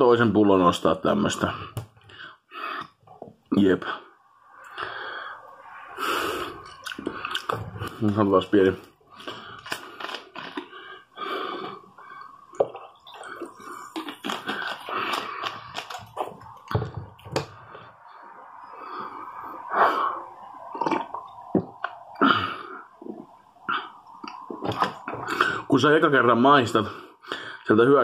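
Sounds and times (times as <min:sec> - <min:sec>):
person sipping and swallowing: 0:06.0 - 0:08.1, 0:09.1 - 0:17.9, 0:20.0 - 0:25.7.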